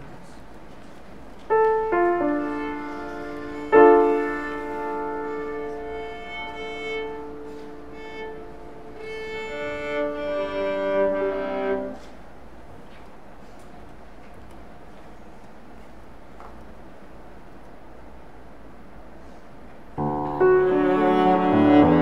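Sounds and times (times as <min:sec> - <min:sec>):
piano chords: 0:01.5 - 0:12.0, 0:20.0 - 0:22.0
viola playing: 0:01.5 - 0:12.1, 0:20.0 - 0:22.0.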